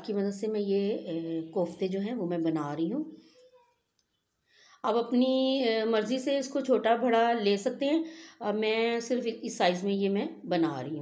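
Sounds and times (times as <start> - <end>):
woman speaking: 0.0 - 3.1, 4.8 - 11.0.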